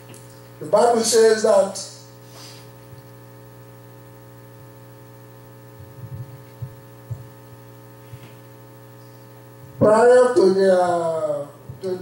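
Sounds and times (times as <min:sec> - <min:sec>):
electrical mains hum: 0:00.0 - 0:12.0
soft low thumps: 0:05.6 - 0:07.4.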